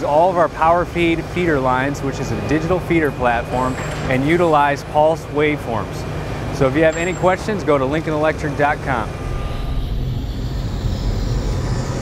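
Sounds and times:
steady low rumble: 7.8 - 12.0
rushing whoosh: 8.7 - 12.0.

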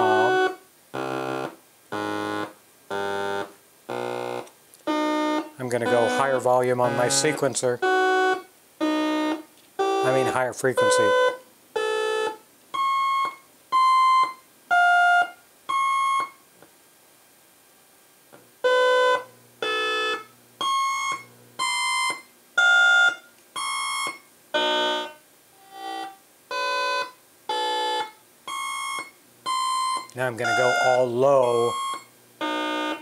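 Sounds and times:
bright synthesizer notes: 0.0 - 2.4, 3.9 - 12.4, 24.6 - 33.0.

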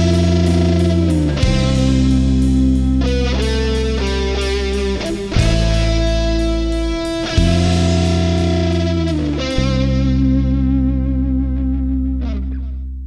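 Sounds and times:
rock chords on electric guitars: 0.0 - 13.0.

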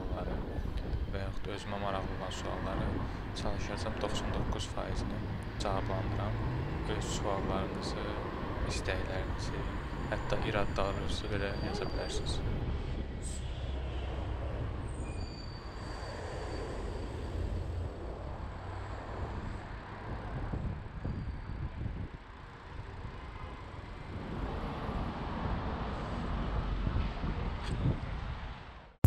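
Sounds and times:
wind on microphone: 0.0 - 14.9, 16.1 - 28.8
bus running alongside: 0.0 - 29.0
road traffic: 0.0 - 29.0.

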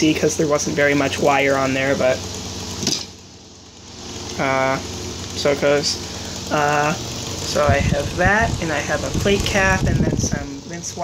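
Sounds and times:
person speaking: 0.0 - 2.3, 4.3 - 11.0
low electrical hum: 0.0 - 11.0.

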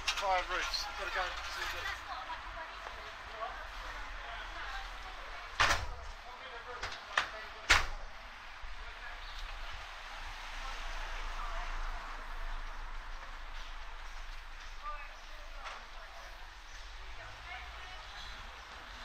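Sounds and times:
street hubbub: 0.0 - 19.0.

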